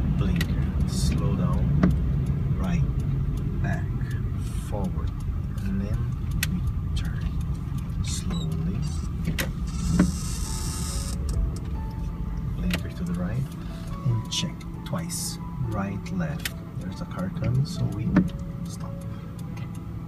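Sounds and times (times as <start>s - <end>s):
car engine and road rumble: 0.0s - 20.0s.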